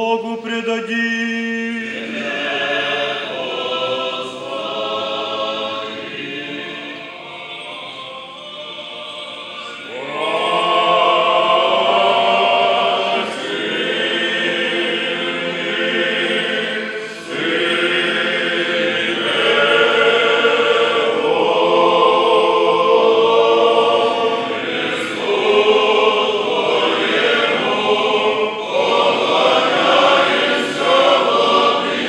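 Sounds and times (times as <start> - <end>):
choir singing unaccompanied chant: 0.0 - 32.0.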